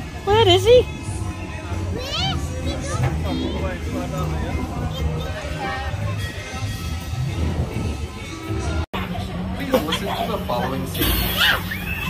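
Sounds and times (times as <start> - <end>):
fairground music: 0.0 - 12.0
child calling and crying: 2.0 - 3.4.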